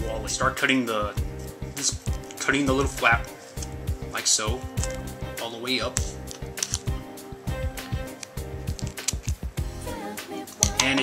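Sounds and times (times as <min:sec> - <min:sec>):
background music: 0:00.0 - 0:11.0
scissors snipping plastic: 0:05.8 - 0:06.9, 0:07.8 - 0:09.5.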